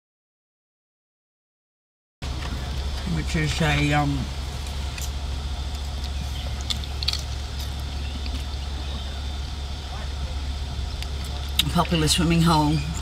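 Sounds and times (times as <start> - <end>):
vehicle engine idling: 2.2 - 13.0.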